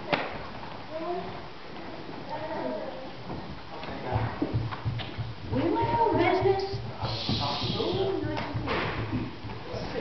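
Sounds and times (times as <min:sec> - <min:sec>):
soft low thumps: 0:03.2 - 0:10.0.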